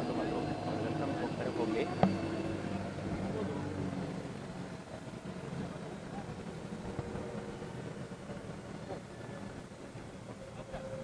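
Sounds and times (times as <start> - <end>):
helicopter running on ground: 0.0 - 11.0.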